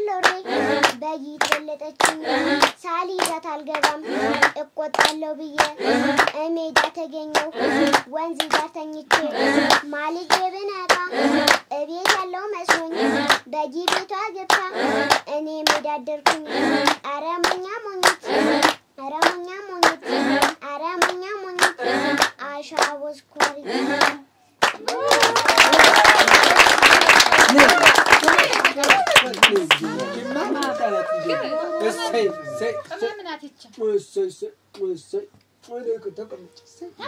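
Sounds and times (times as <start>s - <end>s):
girl chanting sing-song: 0.0s - 24.3s
group clapping in time: 0.0s - 31.1s
loud applause: 23.7s - 32.9s.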